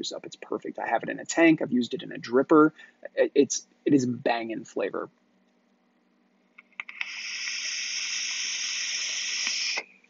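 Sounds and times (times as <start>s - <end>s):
vape clicks: 6.6s - 9.9s
vape airy hiss: 6.8s - 10.0s.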